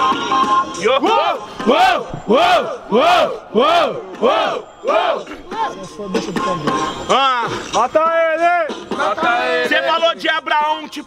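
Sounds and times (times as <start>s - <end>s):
crowd shouting rhythmic chant: 0.6s - 7.1s, 8.9s - 10.0s.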